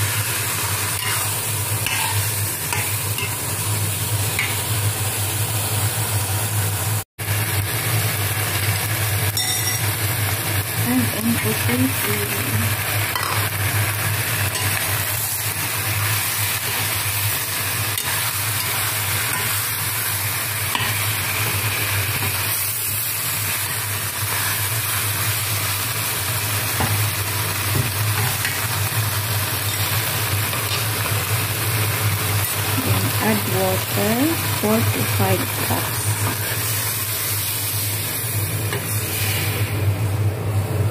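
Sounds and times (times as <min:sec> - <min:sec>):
food sizzling in a pan: 0:00.0 - 0:40.3.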